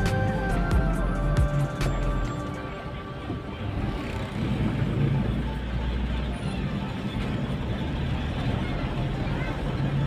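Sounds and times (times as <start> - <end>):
car cabin engine and road noise: 0.0 - 10.0.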